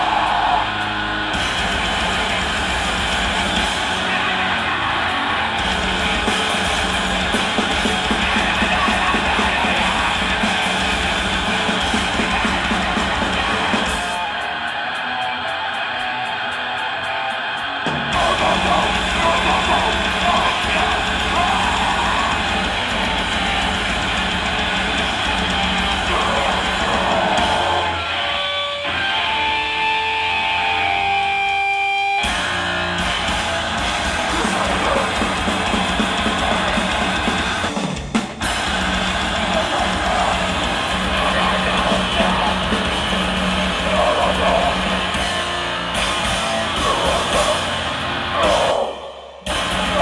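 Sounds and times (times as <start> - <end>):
ringing guitar tones: 0.0 - 37.6
metal band playing: 0.0 - 50.0.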